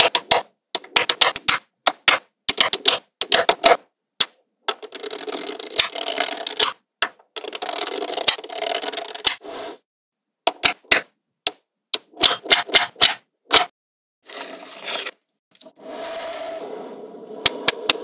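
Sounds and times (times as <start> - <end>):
magnetic balls clattering rapidly: 7.4 - 9.4.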